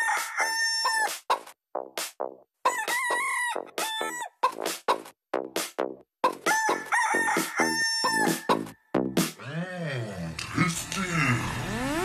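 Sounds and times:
rooster crowing: 0.0s - 1.1s, 2.6s - 4.3s, 6.5s - 8.8s
chicken clucks: 2.6s - 5.1s
techno track: 7.4s - 9.4s.

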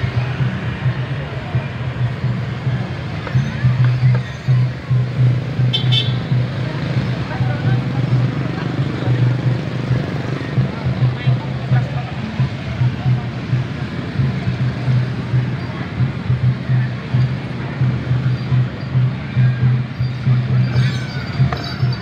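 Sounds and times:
vehicles on the road: 0.0s - 22.0s
voices chattering: 0.0s - 22.0s.

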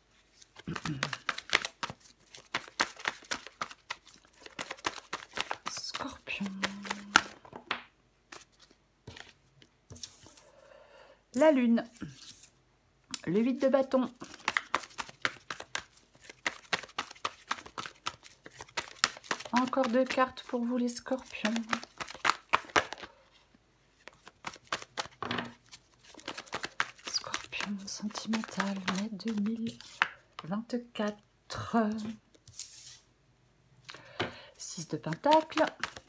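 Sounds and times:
cards tapping and rustling on table: 0.6s - 5.8s, 14.2s - 20.2s, 21.4s - 23.1s, 24.0s - 30.5s, 35.1s - 36.0s.

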